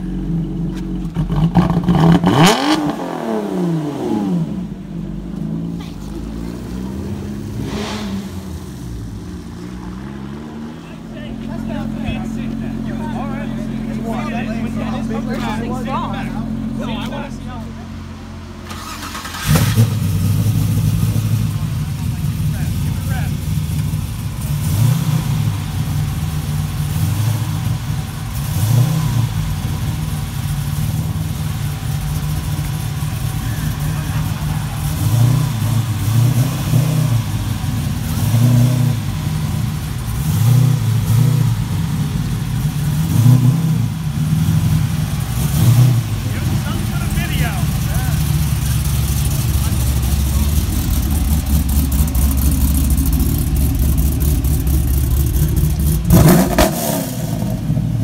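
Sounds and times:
car engine idling and revving: 0.0 - 58.0.

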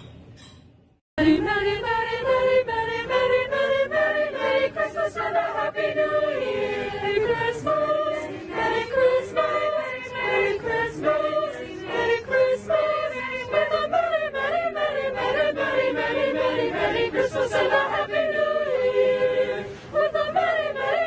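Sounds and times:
choir singing: 1.2 - 21.0.

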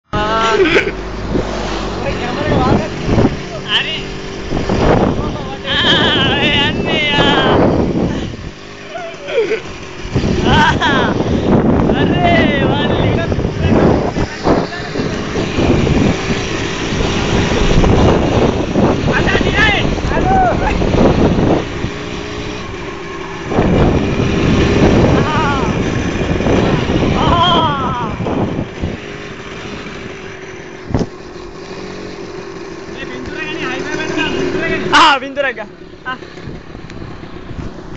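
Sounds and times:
motorcycle engine drone: 0.0 - 37.9
wind buffeting microphone: 1.1 - 33.2, 35.9 - 37.9
people shouting and whooping: 8.8 - 9.7, 19.4 - 20.9, 25.1 - 25.9, 27.0 - 28.3.

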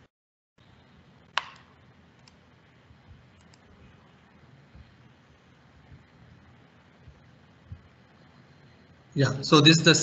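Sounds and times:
low room hiss: 0.6 - 10.0
computer mouse clicks: 1.3 - 2.4, 3.1 - 3.7.

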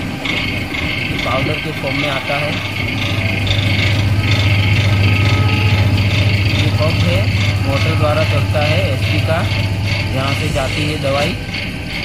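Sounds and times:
sprayer pump motor humming: 0.0 - 12.0.

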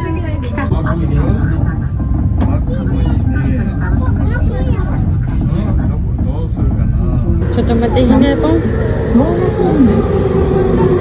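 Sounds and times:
low rumble of elevated railcar: 0.0 - 11.0
voices talking: 7.4 - 11.0.

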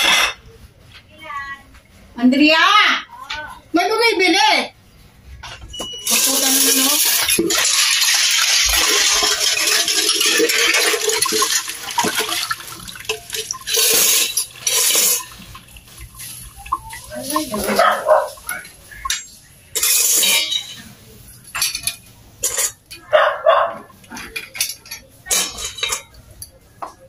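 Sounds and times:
water splashing into metal bowl: 6.1 - 19.0.

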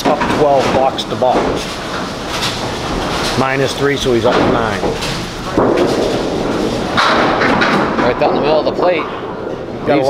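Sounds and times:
bowling ball crashing into pins: 0.0 - 9.4
bowling ball rolling on wooden lane: 0.0 - 9.8.

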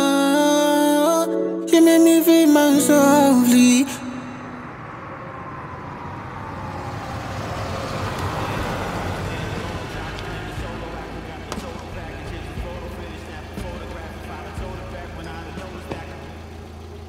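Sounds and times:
car engine and tyre noise: 3.6 - 17.0.

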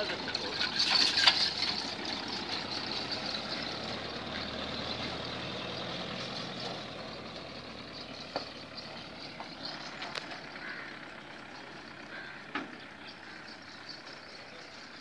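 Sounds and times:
truck engine running: 0.0 - 15.0.

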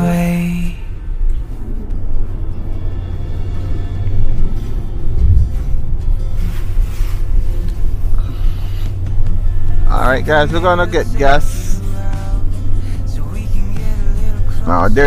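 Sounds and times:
faint music: 0.0 - 15.0
vehicle rumbling over snow: 0.0 - 15.0.

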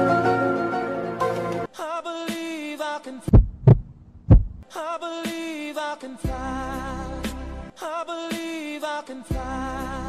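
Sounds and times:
background song: 0.0 - 3.4, 4.6 - 10.0
deep short thumps: 3.3 - 4.6
low hum: 3.3 - 4.6.

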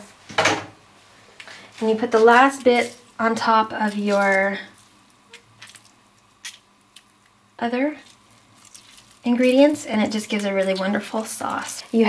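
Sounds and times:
juice dripping into pan: 3.3 - 11.8
wet squishes of lime squeezed: 3.8 - 7.4, 8.0 - 11.8.

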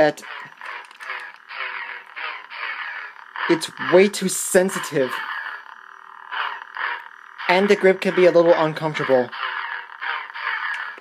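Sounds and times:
toy lightsaber humming: 0.0 - 11.0.

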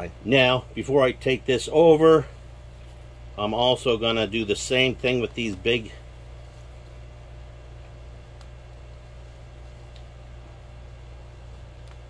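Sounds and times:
low machine hum: 0.0 - 12.0
faint clicks: 9.9 - 10.1, 11.5 - 12.0.

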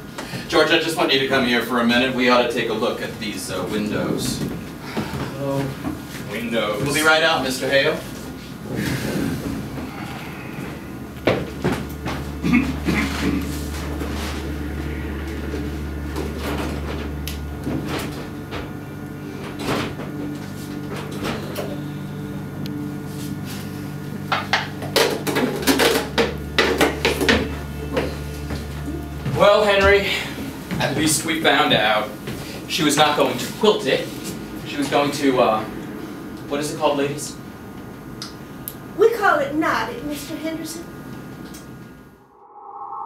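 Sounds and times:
low steady hum: 0.0 - 42.0.

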